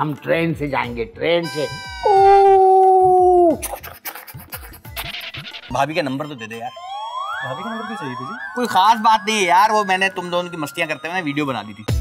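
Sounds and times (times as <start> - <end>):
man wailing cry: 2.0 - 3.6.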